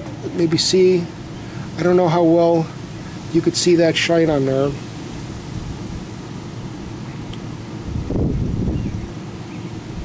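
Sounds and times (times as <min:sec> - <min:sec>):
wind rumbling on microphone: 0:07.8 - 0:09.2.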